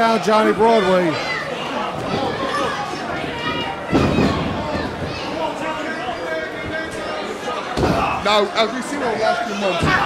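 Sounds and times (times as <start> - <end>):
crowd chattering and calling out: 0.0 - 10.0.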